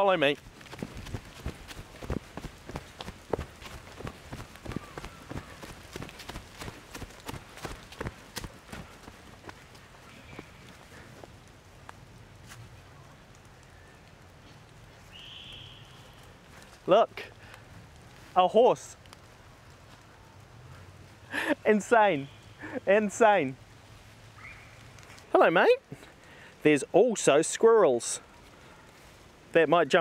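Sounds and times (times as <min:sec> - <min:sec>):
footsteps on fallen leaves: 0:00.1 - 0:12.8.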